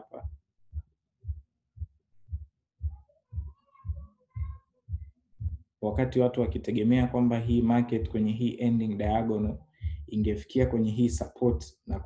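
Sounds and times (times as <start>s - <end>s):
soft low thuds: 0.0s - 8.3s, 9.0s - 12.0s.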